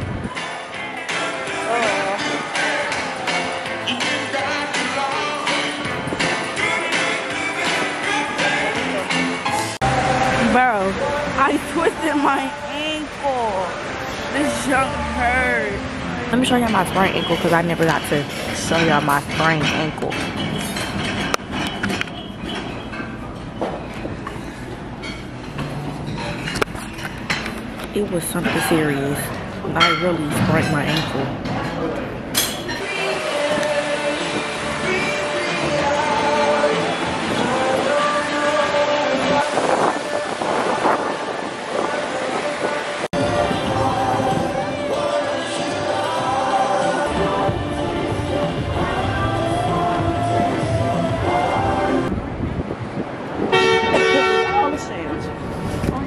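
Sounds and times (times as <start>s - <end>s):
street traffic: 0.0s - 56.0s
low rumbling noise: 22.7s - 53.9s
car horn blast: 53.5s - 55.4s.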